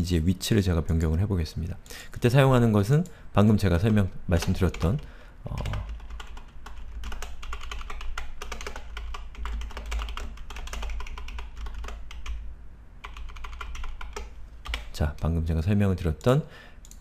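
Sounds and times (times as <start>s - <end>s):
typing on computer keyboard: 4.4s - 12.4s, 13.0s - 14.9s.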